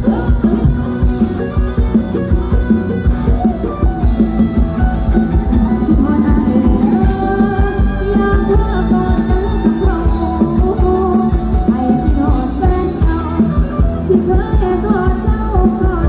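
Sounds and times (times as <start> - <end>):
amplified band dance music: 0.0 - 16.0
drum kit beat: 0.0 - 16.0
person singing: 5.6 - 16.0.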